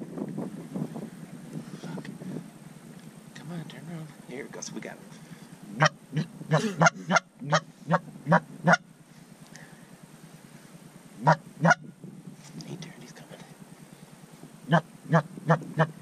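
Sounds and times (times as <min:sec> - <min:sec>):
goose honking: 0:05.8 - 0:08.9, 0:11.2 - 0:11.8, 0:14.7 - 0:16.0.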